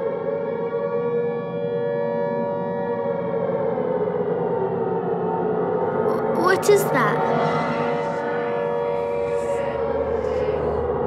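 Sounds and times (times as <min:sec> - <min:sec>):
air-raid siren wailing: 0:07.1 - 0:10.9.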